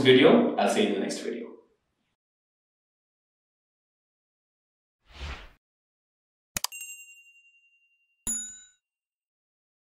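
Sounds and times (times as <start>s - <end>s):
bright bell chime: 6.7s - 8.8s
ringing ding: 6.7s - 8.9s.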